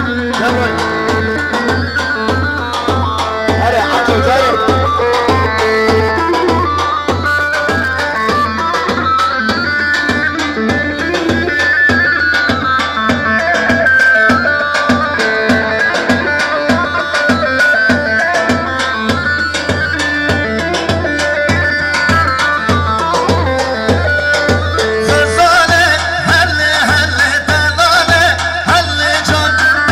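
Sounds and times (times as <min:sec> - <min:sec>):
amplified melody line: 0:00.0 - 0:29.9
driving drum beat: 0:00.0 - 0:29.9.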